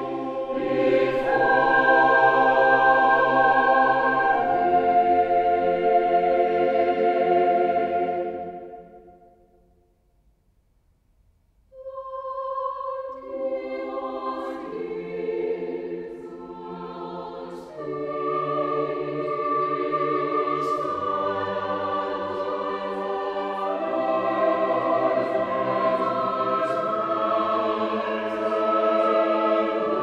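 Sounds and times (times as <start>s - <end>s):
mixed choir singing chords: 0.0s - 9.4s, 11.8s - 30.0s.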